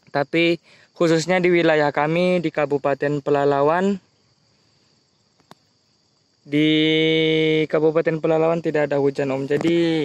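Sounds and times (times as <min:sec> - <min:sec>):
insect chorus: 0:00.0 - 0:10.0.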